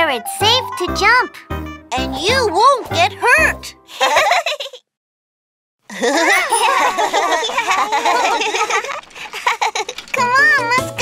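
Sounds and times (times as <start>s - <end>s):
children's song with music: 0.0s - 3.9s, 6.2s - 7.5s, 10.2s - 11.0s
cartoon child laughing: 3.9s - 5.0s, 5.9s - 10.3s.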